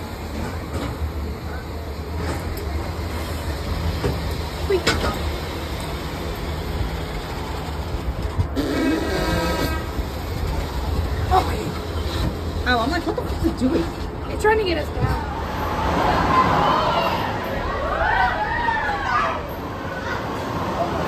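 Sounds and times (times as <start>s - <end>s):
horn sounding: 8.6s - 10.2s.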